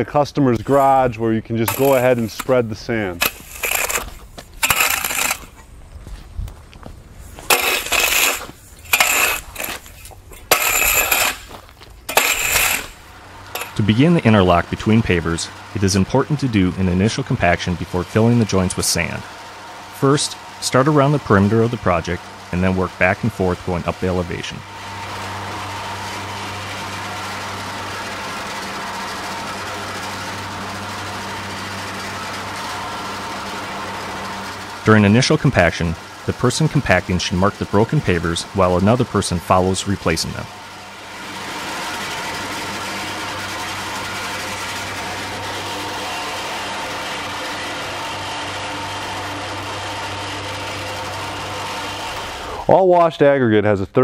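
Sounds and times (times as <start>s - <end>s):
plate compactor droning: 0.6s - 53.0s
metal rake scraping sand on concrete: 1.6s - 5.6s, 7.2s - 19.2s, 20.1s - 30.4s, 31.1s - 40.5s.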